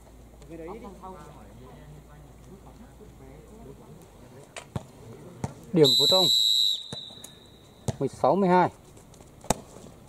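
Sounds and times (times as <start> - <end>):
referee's whistle blast: 5.8 - 7.7.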